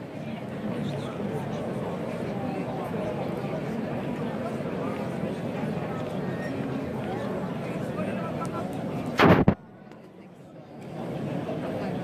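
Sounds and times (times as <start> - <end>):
crowd noise: 0.0 - 12.0
firework rocket bang: 9.2 - 9.6.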